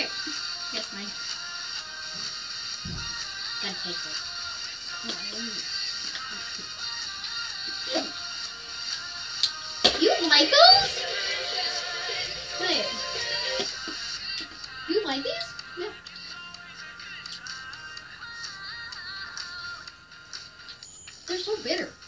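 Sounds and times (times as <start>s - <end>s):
background music song: 0.0s - 22.0s.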